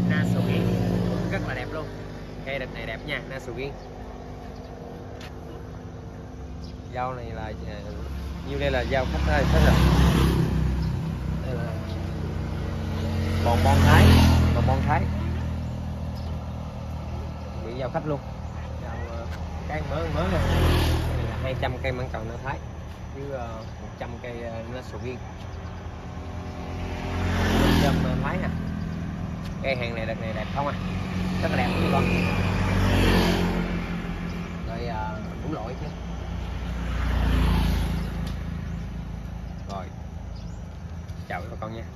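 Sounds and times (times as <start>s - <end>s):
vehicle engine rumbling: 0.0s - 41.9s.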